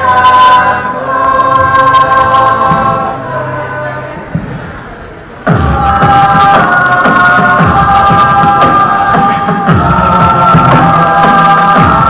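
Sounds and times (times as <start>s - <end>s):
vocal group holding a chord: 0.0s - 12.0s.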